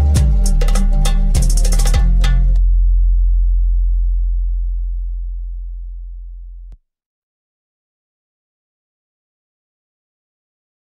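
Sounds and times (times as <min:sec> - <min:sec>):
deep bass note ringing: 0:00.0 - 0:06.8.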